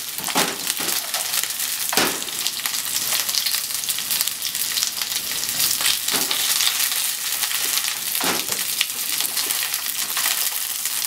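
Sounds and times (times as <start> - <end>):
chicken sizzling in a frying pan: 0.0 - 11.0.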